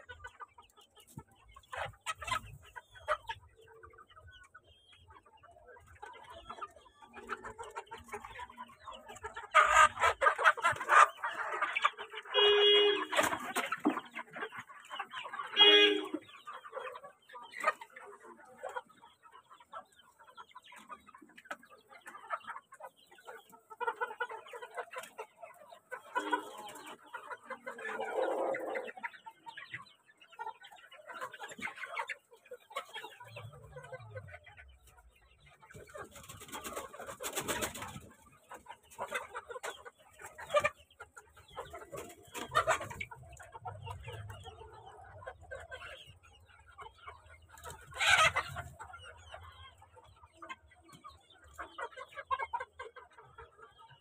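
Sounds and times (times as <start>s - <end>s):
hens and roosters clucking: 0.0s - 54.0s.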